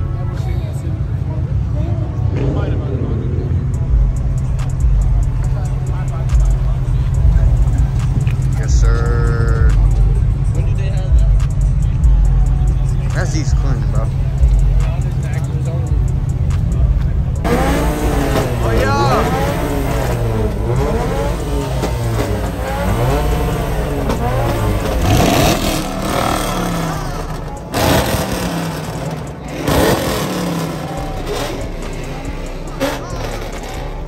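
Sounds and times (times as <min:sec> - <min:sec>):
crowd talking: 0:00.0 - 0:34.0
car engine pulling off: 0:02.2 - 0:34.0.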